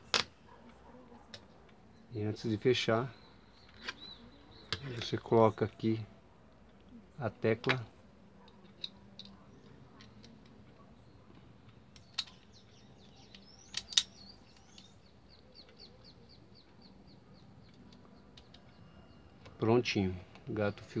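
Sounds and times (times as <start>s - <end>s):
hard plastic clicks: 11.6s - 14.9s.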